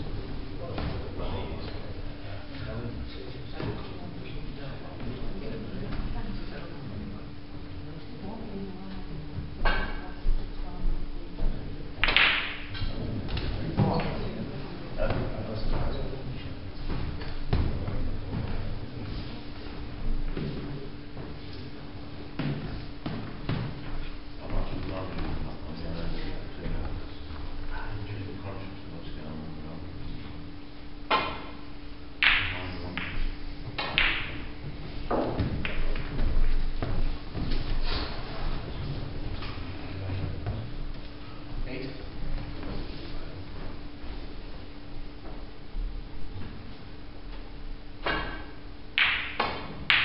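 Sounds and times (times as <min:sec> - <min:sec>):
snooker balls clicking: 0:12.0 - 0:13.5, 0:35.1 - 0:36.6
snooker balls knocking: 0:12.0 - 0:13.5, 0:32.2 - 0:37.8, 0:48.1 - 0:50.0.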